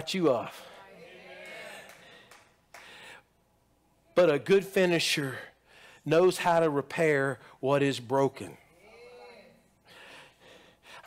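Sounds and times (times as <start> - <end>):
faint breath: 2.0 - 3.4, 5.6 - 6.1, 9.8 - 11.0.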